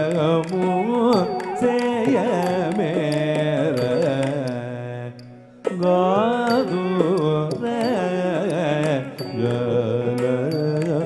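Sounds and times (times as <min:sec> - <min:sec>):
person singing ornamented melody: 0:00.0 - 0:11.0.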